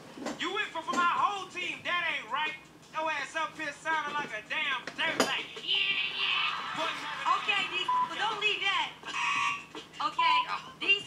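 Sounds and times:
voices talking and shouting: 0:00.4 - 0:11.0.

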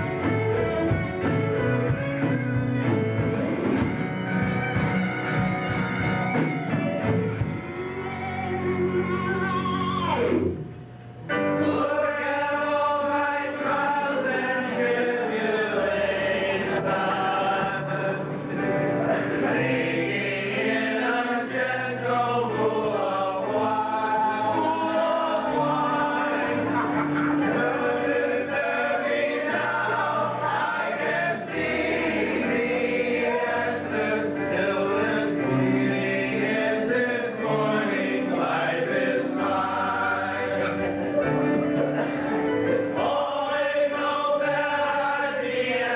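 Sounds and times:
chorus singing held notes: 0:04.8 - 0:45.9.

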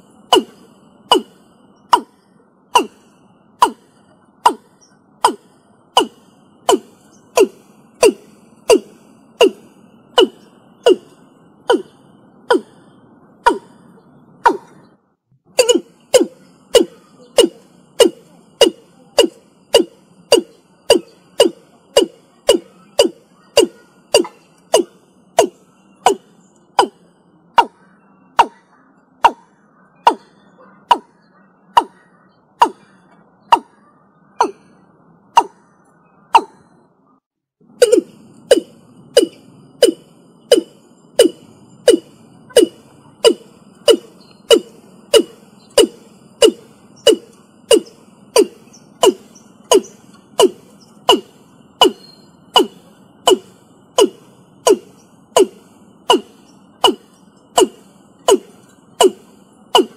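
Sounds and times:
bird calling short notes: 0:00.0 - 0:15.0, 0:15.6 - 0:36.9, 0:37.7 - 0:59.9.

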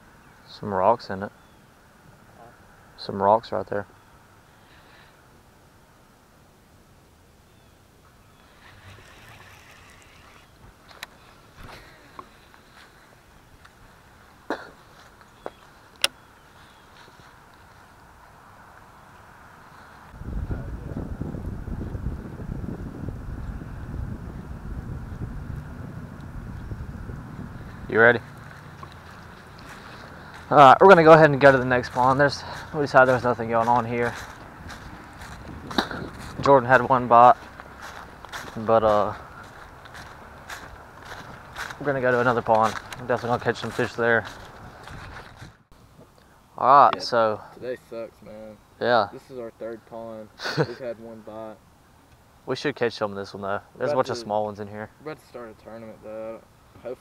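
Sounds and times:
fishing rod handling rustle: 0:08.4 - 0:13.0
footsteps crunching dry leaves: 0:08.4 - 0:18.3, 0:27.6 - 0:45.6.

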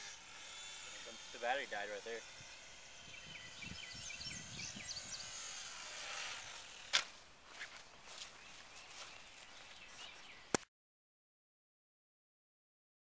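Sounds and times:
outdoor ambience: 0:00.0 - 0:10.7
bird chirps: 0:02.5 - 0:05.5, 0:08.1 - 0:10.6.

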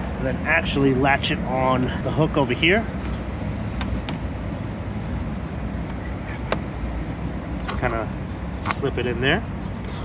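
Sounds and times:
low traffic rumble: 0:00.0 - 0:10.0.

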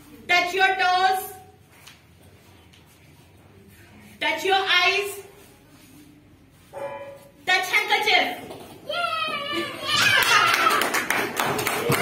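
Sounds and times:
young children shouting: 0:08.9 - 0:11.0
hand-clapping: 0:10.0 - 0:12.0.

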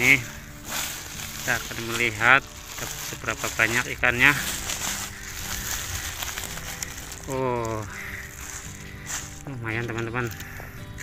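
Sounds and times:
plastic sack rustling: 0:00.0 - 0:10.6.

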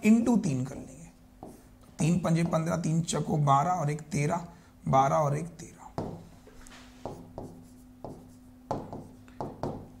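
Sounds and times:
faint steady hum: 0:00.0 - 0:10.0
stylus strokes on touchscreen: 0:06.3 - 0:09.7.

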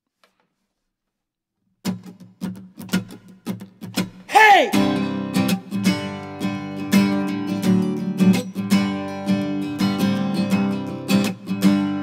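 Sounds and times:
acoustic guitar strumming: 0:01.9 - 0:12.0.

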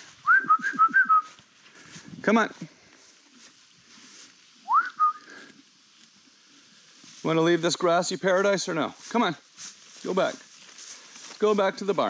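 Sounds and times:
person whistling: 0:00.2 - 0:01.3, 0:04.6 - 0:05.4.

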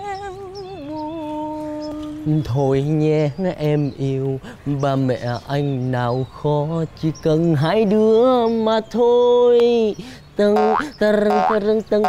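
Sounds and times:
man singing comic notes: 0:00.0 - 0:12.0.

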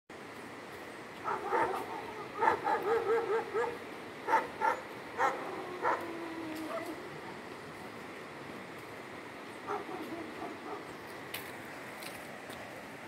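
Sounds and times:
dog barking: 0:01.2 - 0:06.1, 0:06.7 - 0:07.0, 0:09.7 - 0:10.9.

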